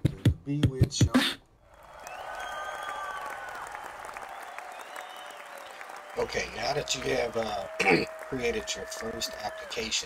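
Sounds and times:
crowd clapping: 1.7s - 10.0s
whistles: 1.8s - 6.4s.

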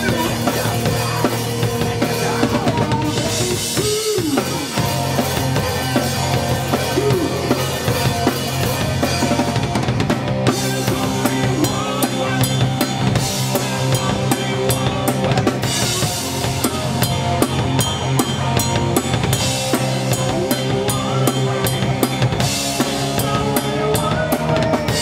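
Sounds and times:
drum kit beat: 0.0s - 25.0s
live rock band playing: 0.0s - 25.0s.

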